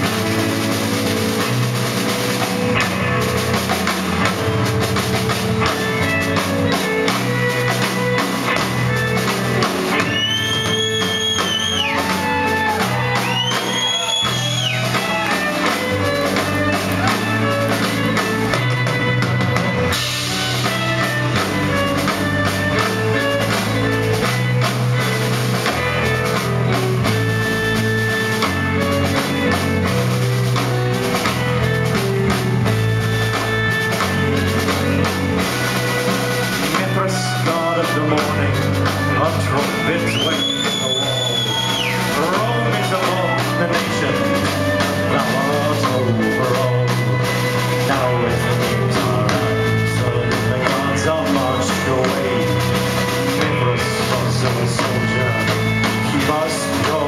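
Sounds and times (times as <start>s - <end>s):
bass guitar: 0.0s - 57.0s
bowed violin melody: 0.0s - 57.0s
drum kit steady beat: 0.0s - 57.0s
electric guitar: 0.0s - 57.0s.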